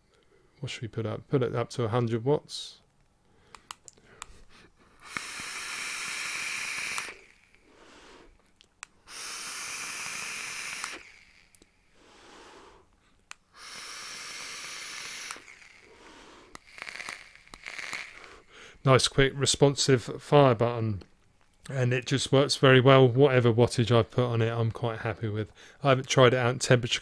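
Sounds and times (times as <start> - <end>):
sharp clicks: 2.8 - 4.4, 5.0 - 7.4, 9.9 - 11.7, 14.5 - 15.6
exhale: 3.3 - 8.4, 9.0 - 16.6, 18.1 - 18.8, 25.5 - 25.8
vape draw hiss: 3.6 - 18.9.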